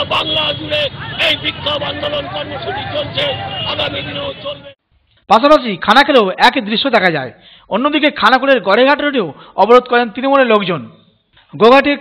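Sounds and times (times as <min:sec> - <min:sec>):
man shouting: 0:00.0 - 0:04.7
voices shouting in a babble: 0:00.0 - 0:04.7.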